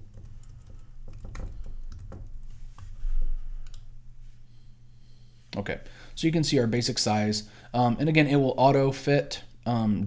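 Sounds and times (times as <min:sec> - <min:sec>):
computer keyboard typing: 0:00.1 - 0:02.4.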